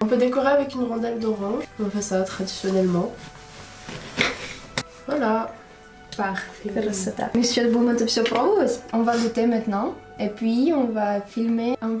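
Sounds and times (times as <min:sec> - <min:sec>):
woman speaking: 0:00.0 - 0:03.2, 0:05.1 - 0:12.0.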